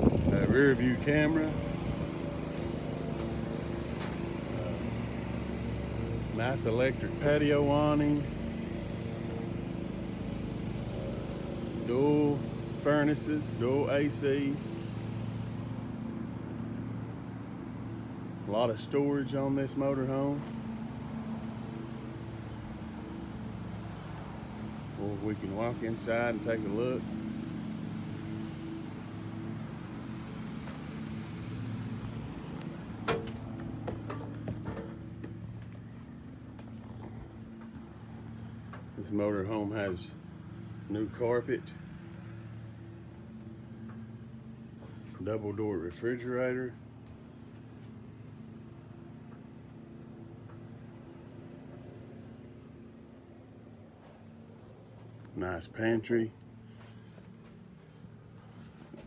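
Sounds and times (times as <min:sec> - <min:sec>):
engine idling: 0:00.0 - 0:59.0.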